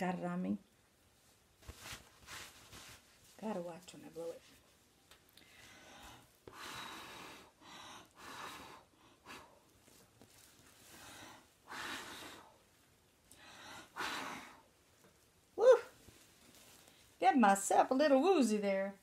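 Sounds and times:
person blowing hissy puffs: 10.9s - 12.6s.

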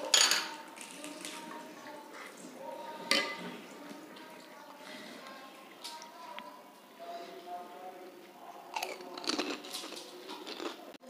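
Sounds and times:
crunchy shells being chewed: 8.7s - 11.0s.

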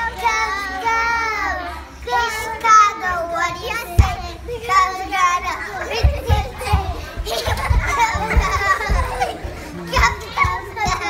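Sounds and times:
girls shouting and laughing: 0.0s - 11.0s.

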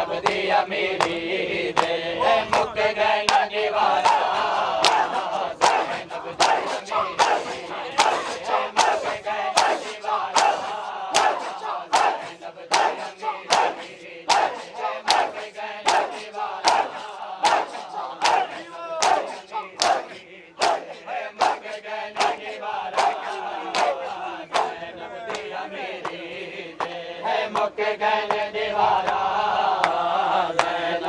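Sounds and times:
men chanting and shouting: 0.0s - 31.0s
men slapping chests in unison: 0.1s - 30.8s.

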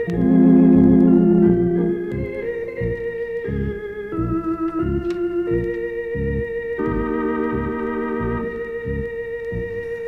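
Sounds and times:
lounge organ music from vinyl: 0.0s - 10.0s.

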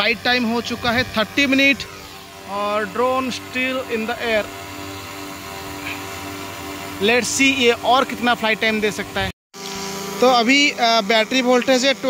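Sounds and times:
quadcopter hovering hum: 0.0s - 12.0s.

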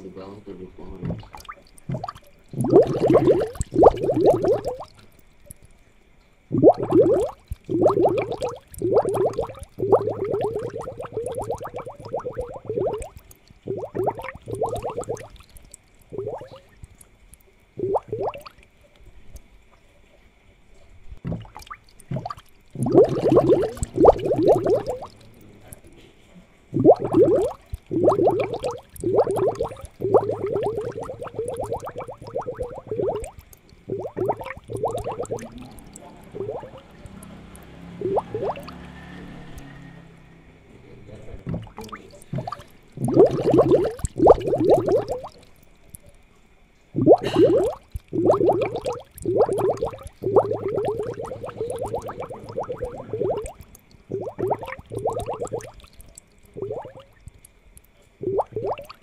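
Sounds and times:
aquarium air bubbles gurgling: 0.0s - 19.8s, 20.6s - 59.0s.

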